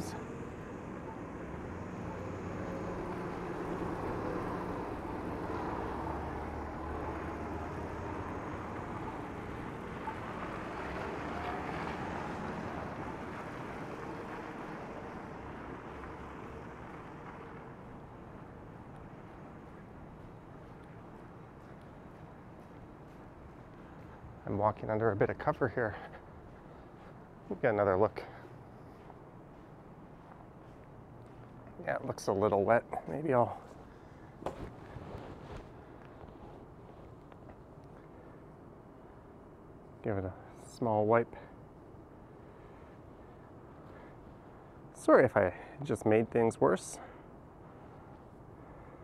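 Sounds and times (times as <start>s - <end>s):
traffic engine hum: 0.0s - 49.0s.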